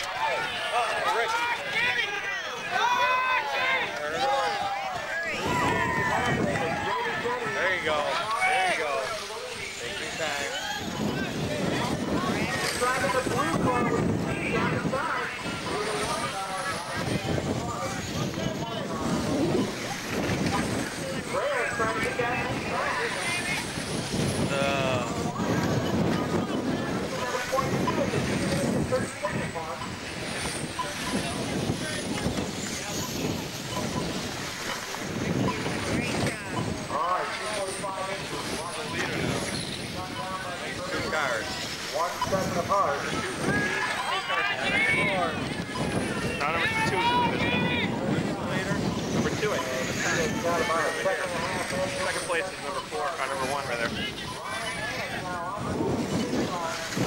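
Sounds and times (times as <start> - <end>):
chatter of spectators' voices: 0.0 - 57.0
wind on microphone: 2.6 - 57.0.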